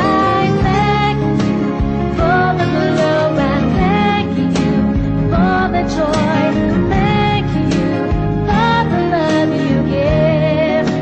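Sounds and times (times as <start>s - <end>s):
song with singing and beat: 0.0s - 11.0s.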